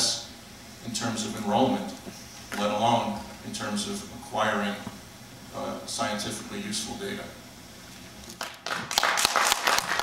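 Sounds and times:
audience applause: 8.4s - 10.0s.

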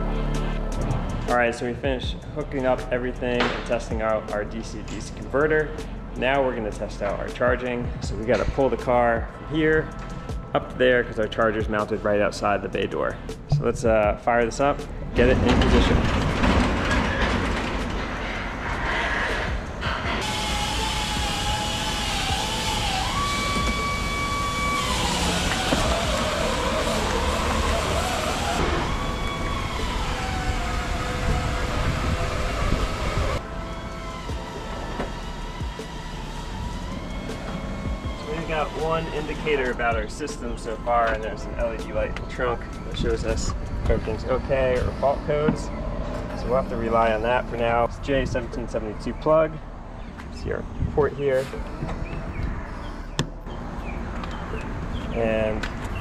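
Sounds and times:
electric motor whine: 19.5s - 41.2s.

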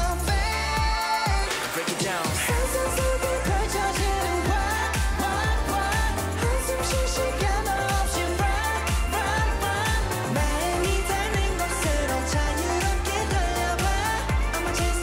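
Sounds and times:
heavy electronic beat: 0.0s - 15.0s
man singing dance-pop song: 0.0s - 15.0s.

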